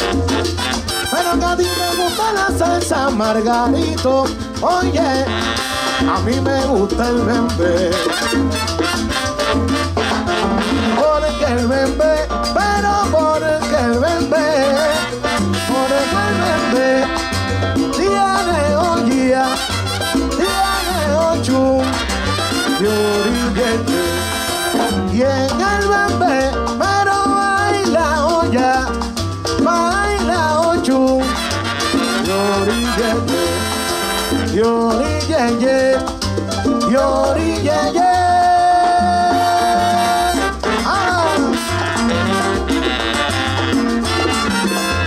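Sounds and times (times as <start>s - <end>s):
brass lines: 0.0s - 2.5s, 5.3s - 6.5s, 7.9s - 11.9s, 14.5s - 18.1s, 19.3s - 25.2s, 31.2s - 34.8s, 39.3s - 45.0s
congas: 0.0s - 45.0s
maracas: 0.0s - 45.0s
salsa band playing: 0.0s - 45.0s.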